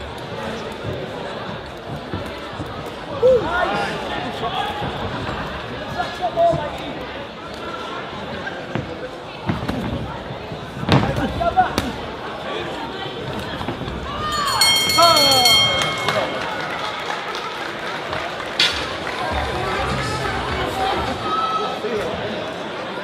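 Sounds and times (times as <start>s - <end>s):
boxing ring bell ringing: 14.2s - 17.2s.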